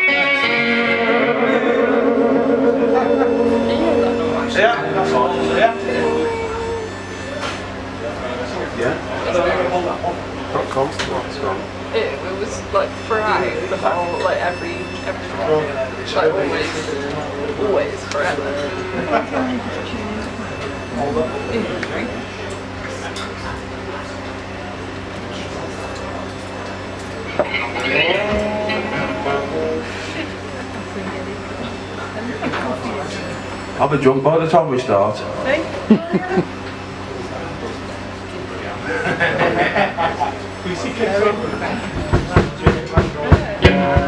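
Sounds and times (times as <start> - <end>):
electric guitar chords ringing: 0.0 - 9.1, 13.1 - 22.8, 25.9 - 32.2, 43.6 - 44.0
low chatter: 0.0 - 44.0.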